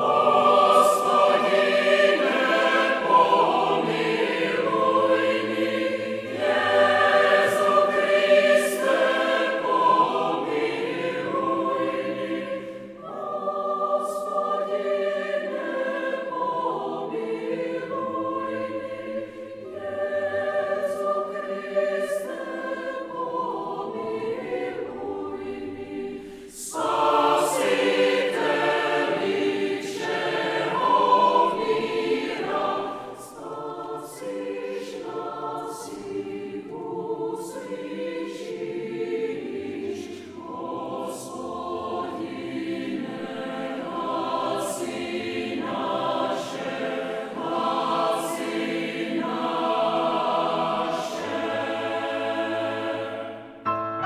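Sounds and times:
mixed choir singing: 0.0 - 53.6.

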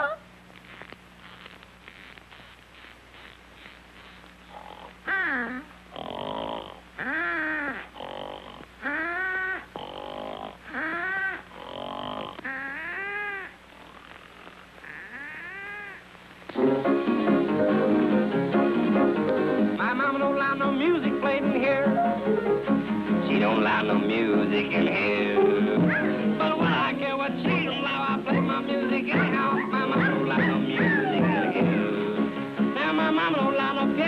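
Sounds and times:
cartoon snoring: 4.0 - 14.0.

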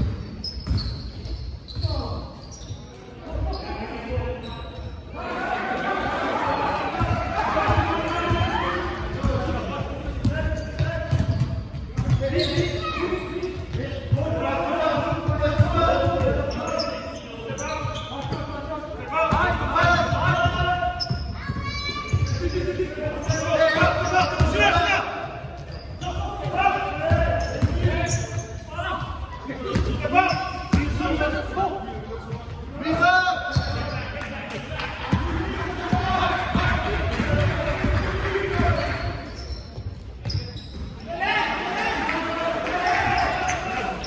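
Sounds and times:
basketball bouncing on hall floor: 0.0 - 2.1, 6.9 - 16.6, 19.2 - 31.2, 32.2 - 34.1, 35.0 - 41.0
players calling out: 3.2 - 44.0.

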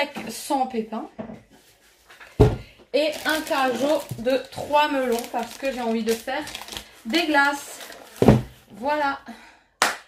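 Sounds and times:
heavy thump on kitchen surface: 2.4 - 2.7, 8.2 - 8.6.

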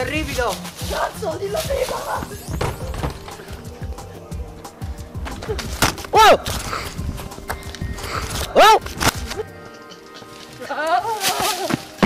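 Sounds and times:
person yelling: 6.1 - 6.4, 8.6 - 8.8.

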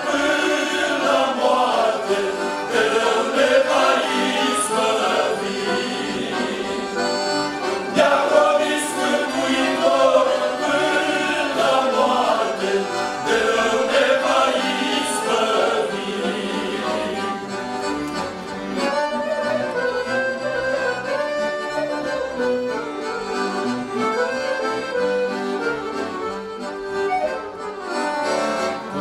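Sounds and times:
men singing a hymn: 0.0 - 17.4
accordions: 0.0 - 29.0.

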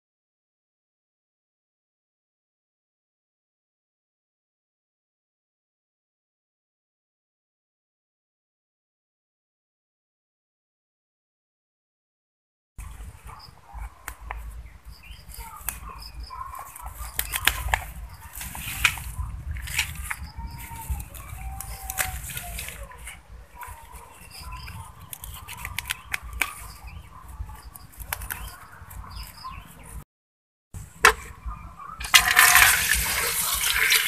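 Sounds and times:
leaves rustling: 12.8 - 30.0, 32.0 - 34.0
wind rumble on microphone: 12.8 - 30.0
knife snipping stalks: 15.2 - 28.8.

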